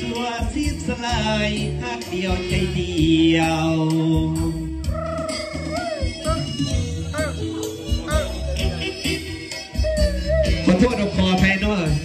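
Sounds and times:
backing track bass and beat: 0.0 - 12.0
wavering keyboard melody: 4.5 - 12.0.

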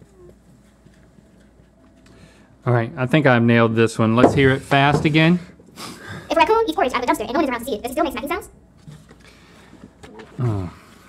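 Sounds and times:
person murmuring: 10.2 - 10.9.

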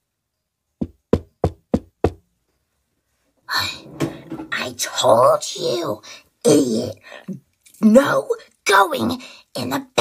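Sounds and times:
sharp knocks: 0.8 - 2.2.

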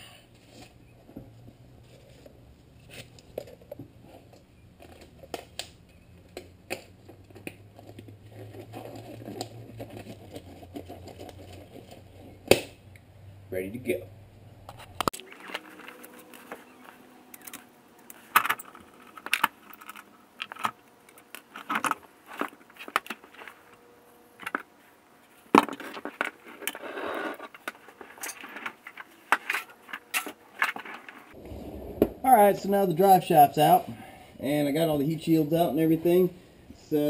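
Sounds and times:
metallic clinks and scrapes: 26.4 - 31.2.

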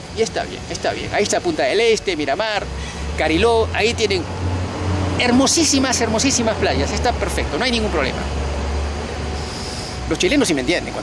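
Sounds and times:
vehicle passing: 0.0 - 11.0.

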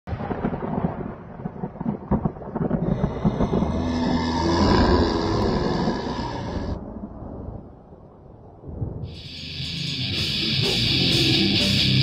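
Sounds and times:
thunder rumbling: 0.1 - 11.6
eerie musical sting: 9.1 - 12.0.

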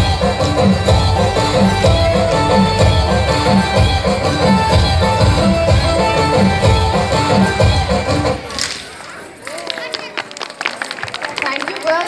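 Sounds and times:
dance music: 0.0 - 8.6
audience applause: 9.2 - 12.0.

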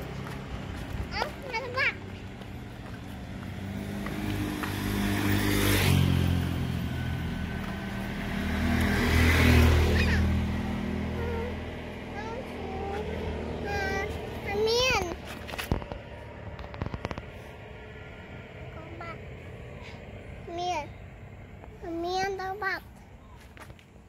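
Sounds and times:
vehicle engines passing by: 0.0 - 24.0.

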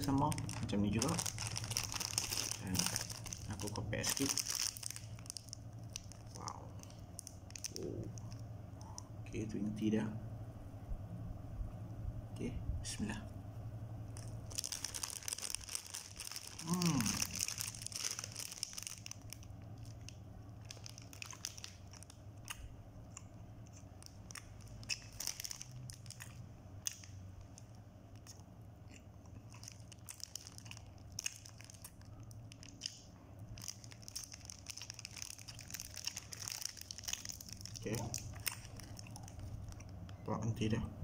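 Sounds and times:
plastic wrapper crinkling: 0.0 - 9.0, 14.1 - 22.6, 23.7 - 28.4, 29.2 - 40.2
chewing soft bread: 0.0 - 9.1, 14.1 - 40.3
low hum: 0.0 - 41.0.

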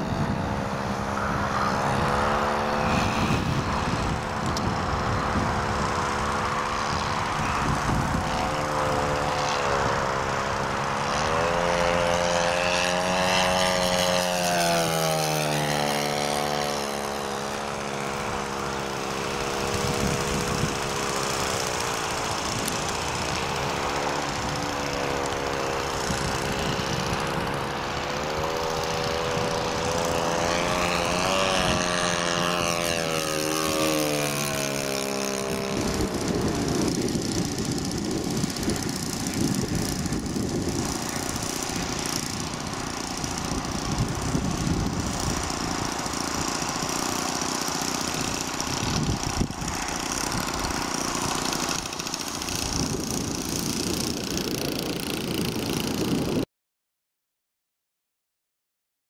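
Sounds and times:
model plane engine and propeller: 0.0 - 56.5.

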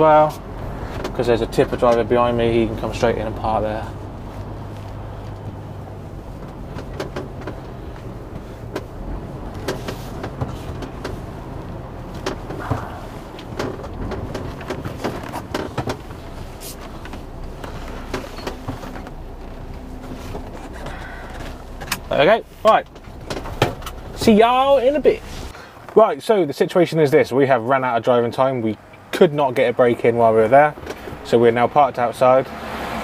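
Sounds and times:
lorry diesel engine running: 0.0 - 25.8
clicks and knocks in cab: 0.3 - 2.1, 4.0 - 25.2.

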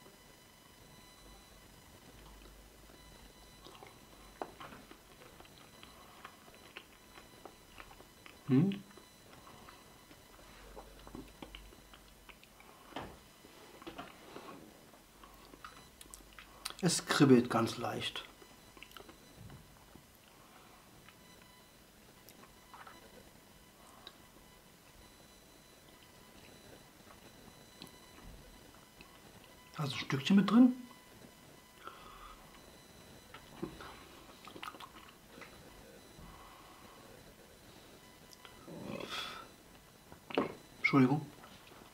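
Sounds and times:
chewing soft food: 0.0 - 16.9, 18.1 - 29.8, 30.9 - 41.9
wet mouth clicks: 18.8 - 19.2, 34.4 - 35.2.

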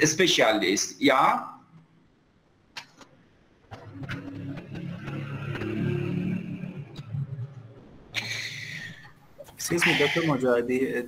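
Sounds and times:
vehicle engine running: 3.7 - 8.1.

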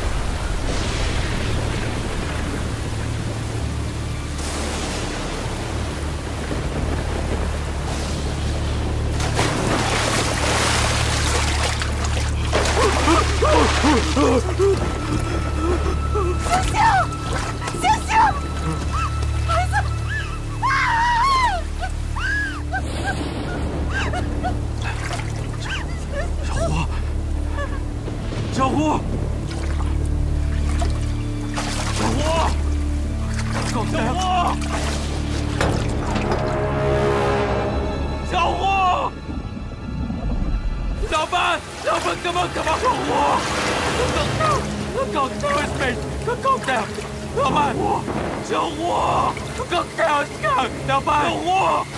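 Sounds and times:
wind and water hiss: 0.0 - 37.3, 39.2 - 51.9
heavy rain: 0.0 - 51.9
rushing floodwater: 0.0 - 51.9.

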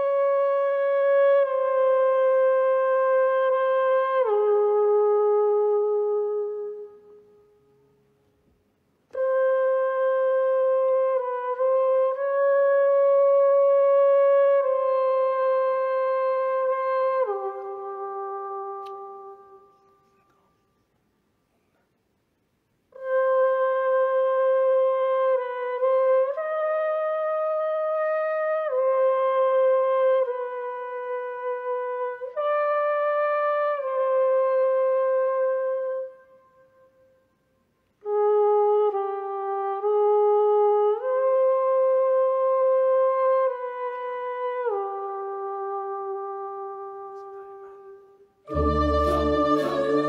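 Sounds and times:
voice imitating wind instrument: 47.0 - 50.0.

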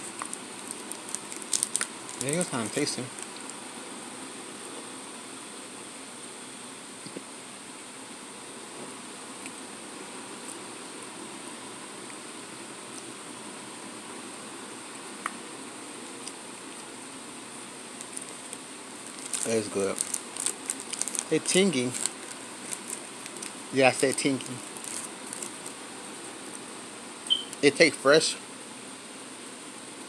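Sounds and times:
room and microphone hiss: 0.0 - 30.0.

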